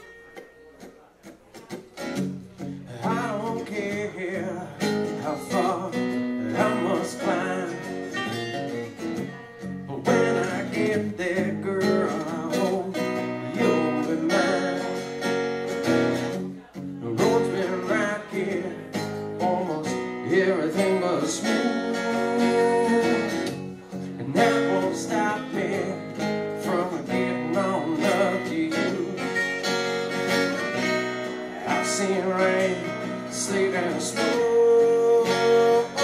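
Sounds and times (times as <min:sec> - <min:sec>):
acoustic guitars playing: 0:00.0 - 0:36.0.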